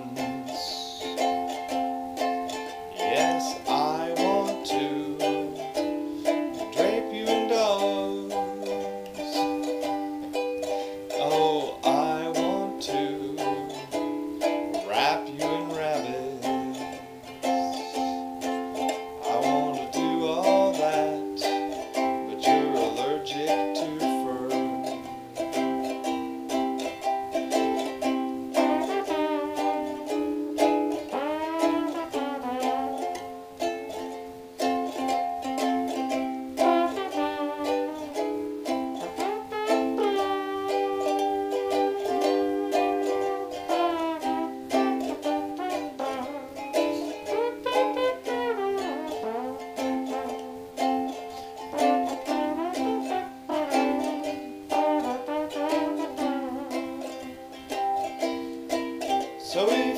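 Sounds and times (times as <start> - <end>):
ukulele strumming: 0.0 - 59.9.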